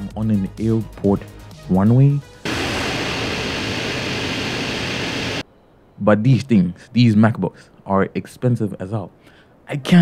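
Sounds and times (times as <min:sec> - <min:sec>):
jet engine rushing: 0:02.4 - 0:05.4.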